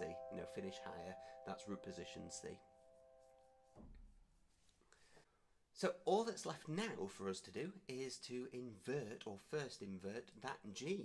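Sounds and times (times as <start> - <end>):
piano chord: 0.0 - 4.0
soft low thump: 3.7 - 4.2.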